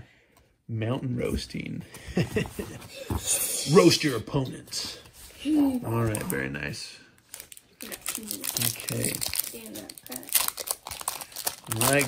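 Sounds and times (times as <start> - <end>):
foil wrapper crinkling: 7.3 - 12.0.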